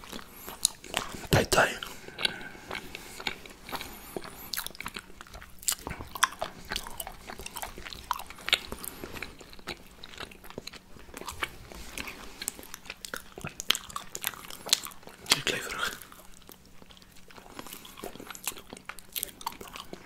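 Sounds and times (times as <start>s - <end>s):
people chewing: 0.0s - 20.0s.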